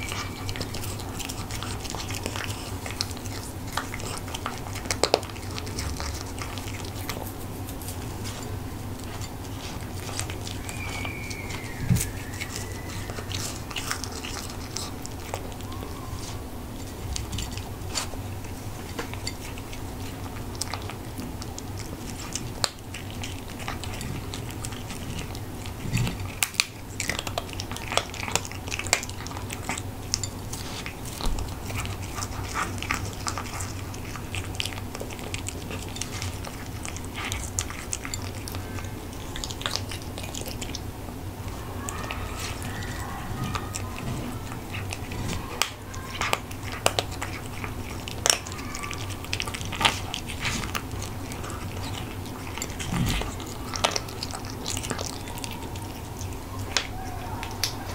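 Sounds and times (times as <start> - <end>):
cat crunching dry food: 0.0 - 57.9.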